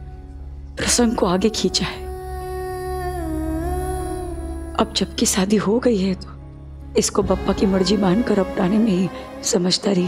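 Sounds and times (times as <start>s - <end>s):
long hummed vocal note: 2.1s - 4.8s.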